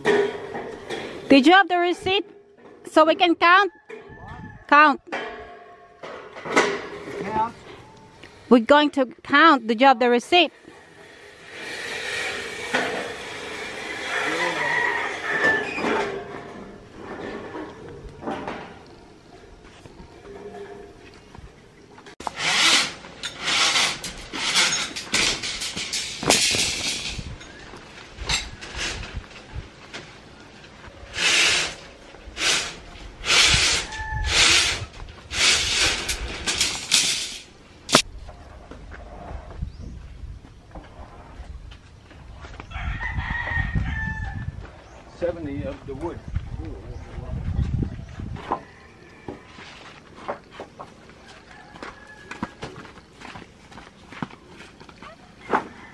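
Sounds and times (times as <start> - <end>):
steel bars scraping and clanking: 0.0 - 4.2, 4.8 - 9.6, 10.3 - 21.2, 22.0 - 30.1, 31.0 - 39.5
rooster crowing: 3.7 - 4.8, 13.6 - 16.3, 33.8 - 34.4, 42.6 - 44.6, 48.4 - 50.0, 51.1 - 52.9, 55.4 - 55.9.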